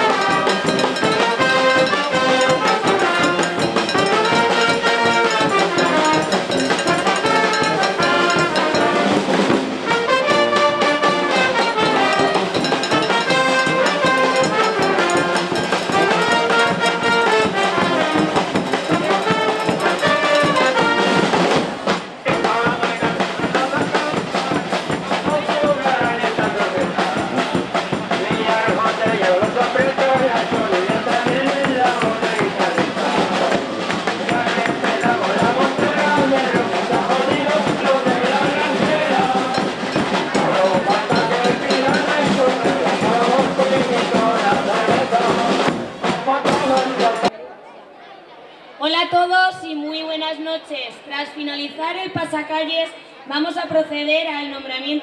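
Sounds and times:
sousaphone: 0.0 - 9.3, 9.9 - 21.4
saxophones: 0.0 - 21.6, 28.2 - 45.8
bass drum: 0.0 - 47.3
snare drums: 0.0 - 47.3
trombones: 0.0 - 47.3
trumpets: 0.0 - 47.3.

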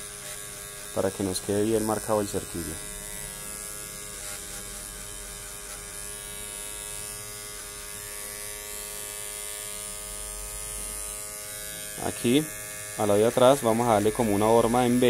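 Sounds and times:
electric hair clippers buzzing: 0.0 - 15.0.

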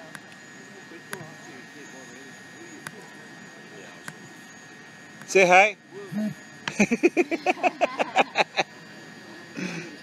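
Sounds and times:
distant chatter of voices: 0.0 - 10.0
high-pitched whine: 0.0 - 10.0.

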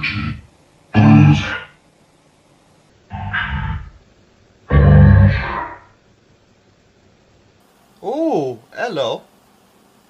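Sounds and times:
distorted voice-like bursts: 0.0 - 1.8, 3.1 - 4.0, 4.7 - 5.9.

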